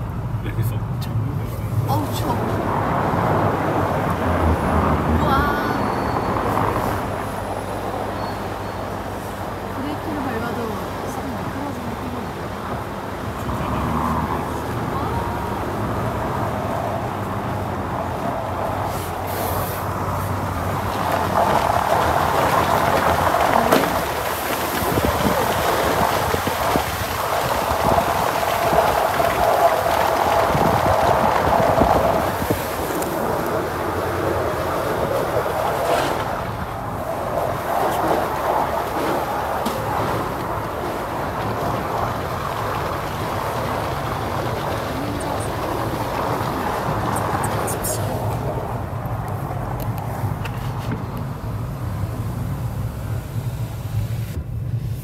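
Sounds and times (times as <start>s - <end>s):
tyres rolling over snow and slush: 0.1s - 55.0s.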